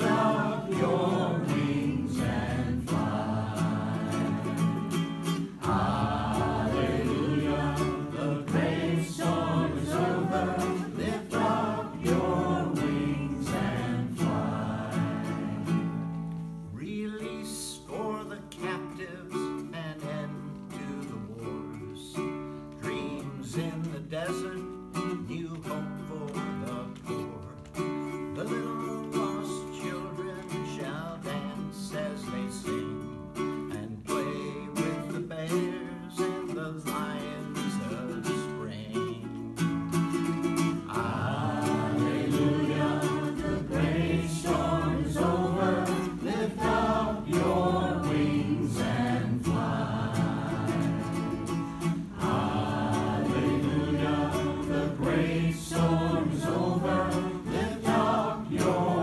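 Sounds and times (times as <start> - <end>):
strummed ukulele: 0.0 - 59.0
person singing: 5.5 - 15.9, 40.9 - 59.0.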